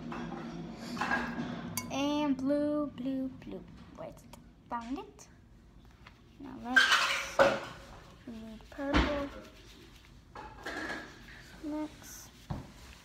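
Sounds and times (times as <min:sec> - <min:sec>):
child's voice: 0:01.8 - 0:05.3, 0:08.2 - 0:09.6, 0:11.5 - 0:12.4.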